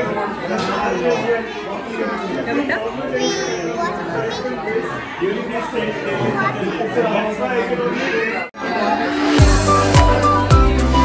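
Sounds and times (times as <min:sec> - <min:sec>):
hubbub of overlapping conversations: 0:00.0 - 0:10.8.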